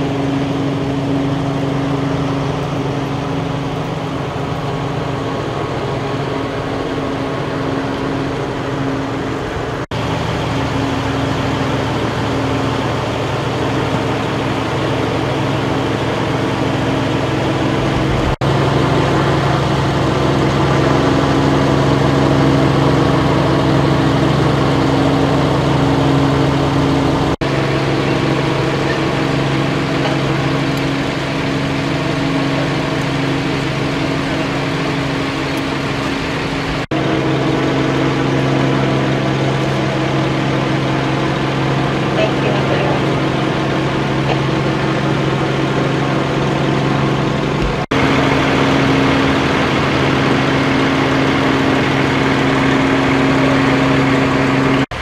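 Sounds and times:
large vehicle engine idling: 0.0 - 55.0.

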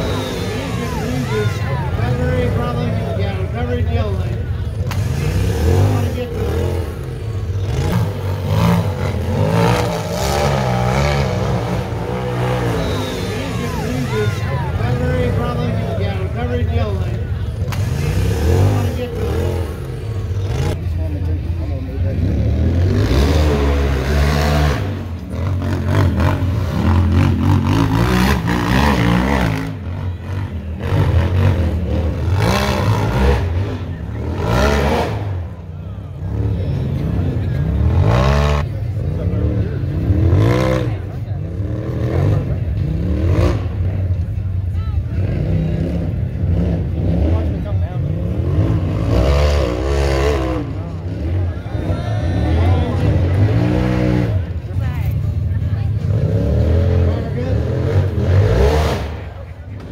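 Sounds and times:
spectators talking and shouting: 0.0 - 59.9
engine revving hard: 4.8 - 16.0, 17.7 - 20.8, 22.1 - 35.6, 36.2 - 44.0, 45.2 - 54.5, 56.0 - 59.4.

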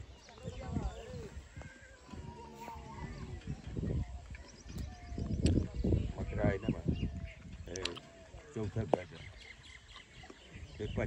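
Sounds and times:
people talking indistinctly: 0.0 - 11.0.

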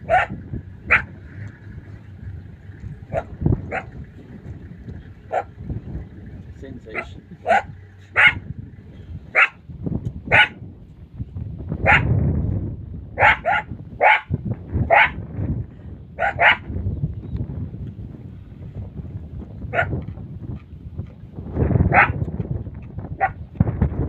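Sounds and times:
low rumble: 0.0 - 24.0
jackals yipping: 3.0 - 5.7, 6.9 - 8.5.

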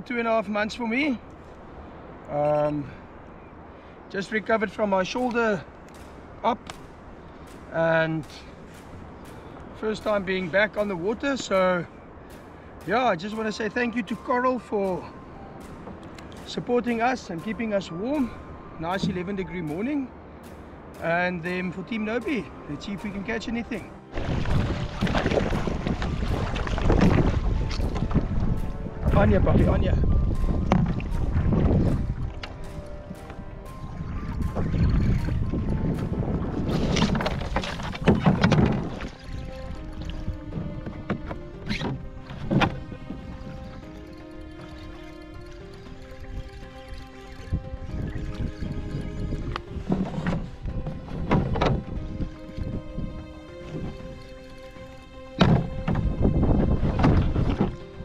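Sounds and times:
background music with held tones: 0.0 - 58.0
paddle strokes splashing water: 23.0 - 58.0.

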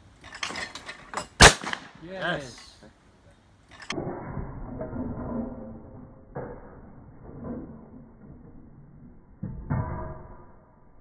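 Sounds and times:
shotgun shot: 1.4 - 2.0.

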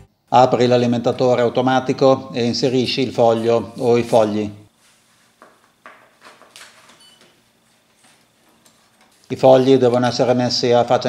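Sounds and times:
paper sheets rustling and tapping: 5.2 - 7.0.

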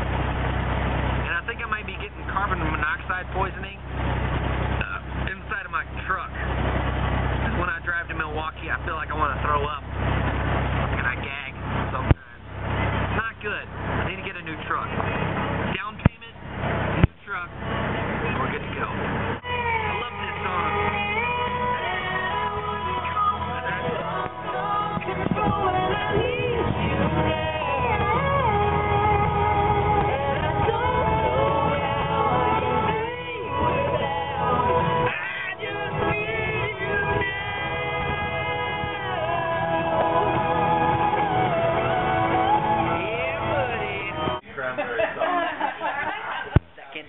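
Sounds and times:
car interior rumble while driving: 0.0 - 44.4
indistinct voices: 1.0 - 45.3
music with sustained notes: 19.4 - 44.4.

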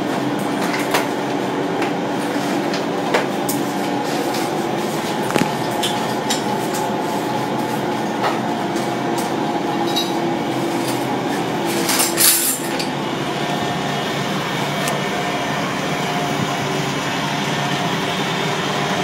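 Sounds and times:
machinery drone: 0.0 - 19.0.

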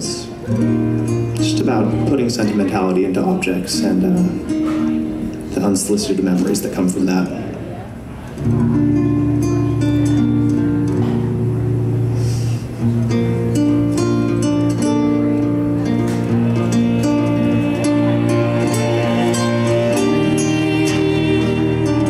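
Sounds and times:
fingerpicked acoustic guitar: 0.0 - 22.0
low cello notes: 8.4 - 22.0.

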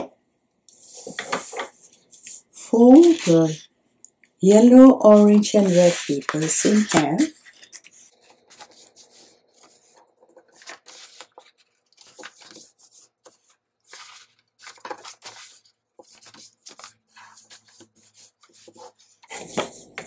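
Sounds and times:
paper folding and rustling: 0.8 - 3.6, 5.1 - 20.0.

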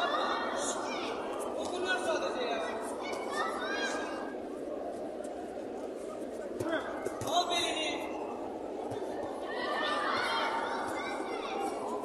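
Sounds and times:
crowd noise in hall: 0.0 - 12.0.

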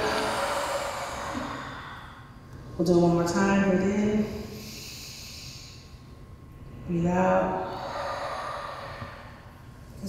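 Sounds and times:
group exhaling: 0.0 - 2.4, 7.6 - 9.6.

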